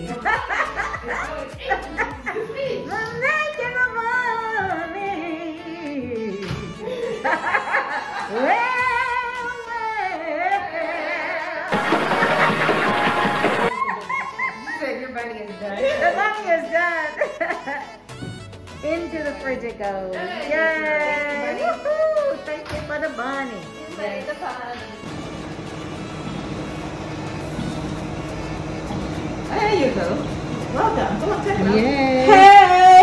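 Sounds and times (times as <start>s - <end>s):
machine humming: 11.7s - 13.7s, 25.1s - 32.0s.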